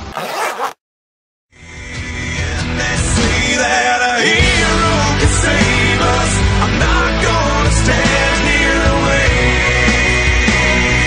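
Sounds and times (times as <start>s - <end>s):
background music: 1.7s - 11.0s.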